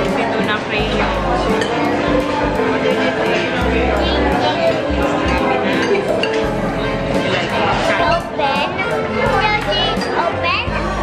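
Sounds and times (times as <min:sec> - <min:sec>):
background music: 0:00.0 - 0:11.0
girl talking: 0:08.0 - 0:11.0.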